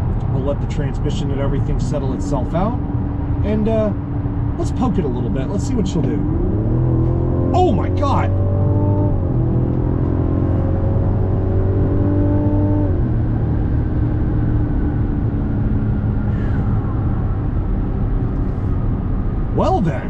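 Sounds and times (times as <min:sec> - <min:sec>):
car engine accelerating: 0:01.4 - 0:20.0.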